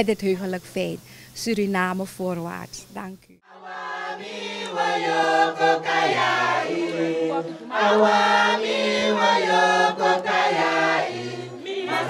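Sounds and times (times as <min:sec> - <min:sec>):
choir singing: 0:03.4 - 0:12.0.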